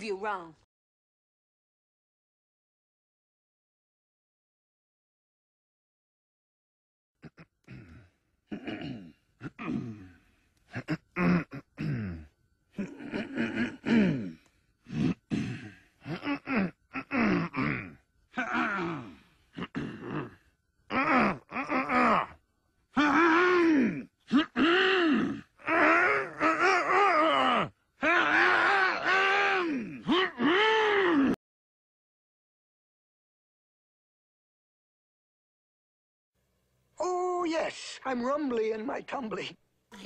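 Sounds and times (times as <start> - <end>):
men clearing throats: 7.2 - 31.4.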